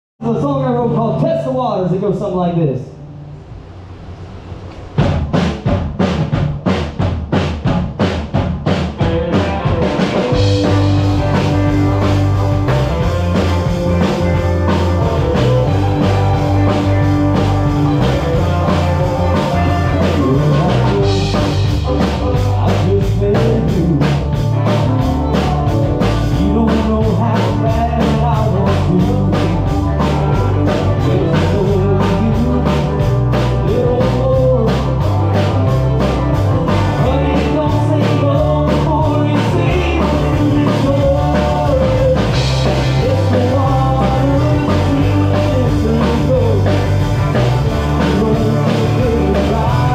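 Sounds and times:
live band playing: 0:00.3 - 0:49.9.

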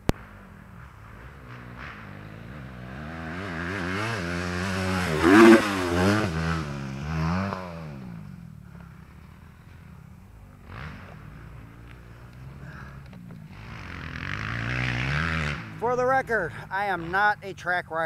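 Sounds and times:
off-road engine revving past: 0:00.1 - 0:09.0, 0:10.5 - 0:17.5.

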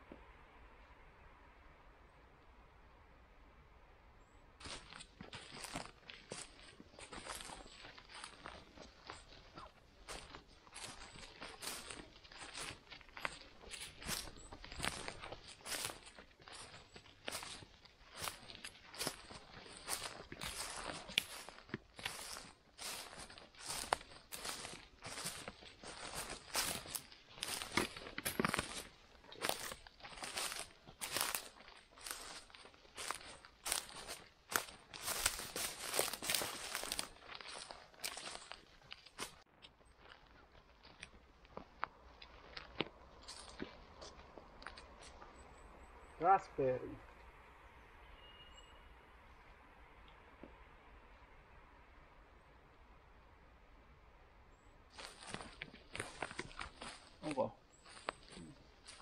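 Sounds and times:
crackling of moss and forest litter: 0:04.2 - 0:47.3, 0:54.5 - 0:59.0
sharp crunches: 0:04.7 - 0:39.4.

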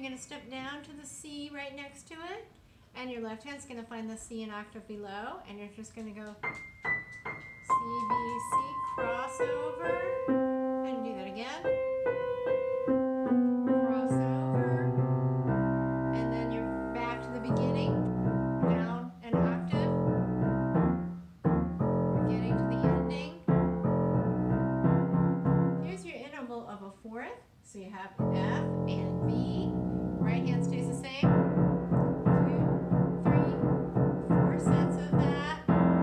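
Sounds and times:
grand piano playing: 0:06.4 - 0:26.0, 0:28.2 - 0:36.0.

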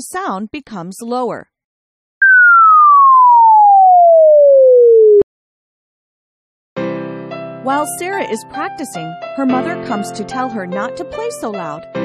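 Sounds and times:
electronic sine tone sweeping down: 0:02.2 - 0:05.2.

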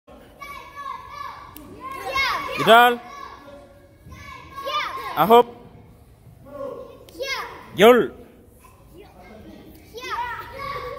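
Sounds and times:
children's voices echoing in hall: 0:08.5 - 0:10.9.

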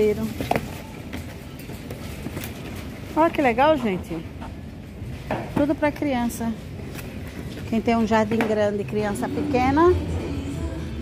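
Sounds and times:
supermarket background hum: 0:00.0 - 0:11.0.

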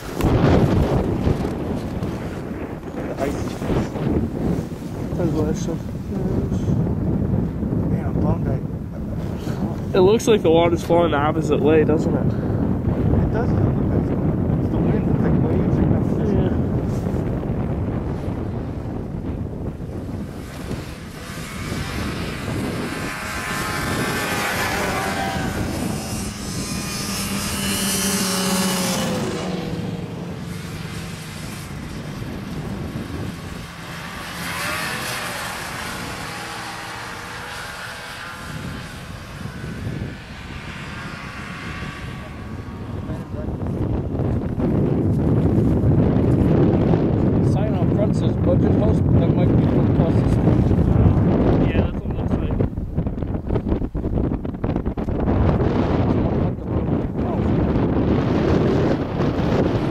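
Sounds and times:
snowmobile engines passing: 0:00.0 - 0:59.9
wind rumble on microphone: 0:00.0 - 0:59.9.

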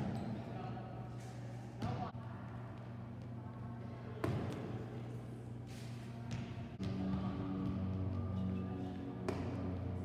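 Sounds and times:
steady low hum: 0:00.0 - 0:10.0
volleyball struck by hands: 0:09.2 - 0:09.7.

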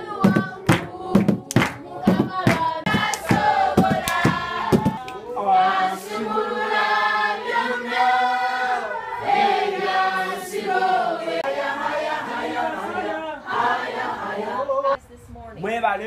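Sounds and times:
congregation singing unaccompanied: 0:00.0 - 0:15.0.

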